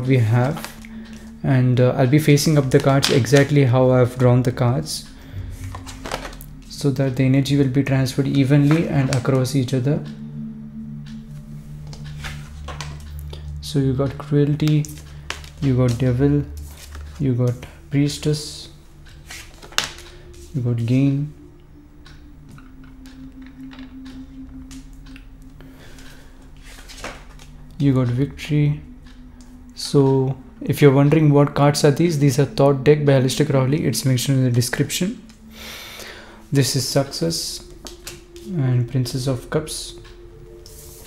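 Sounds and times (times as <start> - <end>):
quiet background music: 0.0 - 41.0
steady low hum: 0.0 - 41.0.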